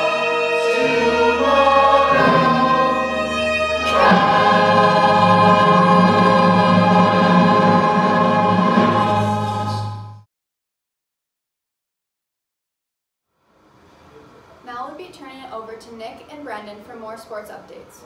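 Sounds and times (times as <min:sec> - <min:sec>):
ensemble singing choral chord: 0:00.0 - 0:10.3
musical accompaniment: 0:00.0 - 0:10.3.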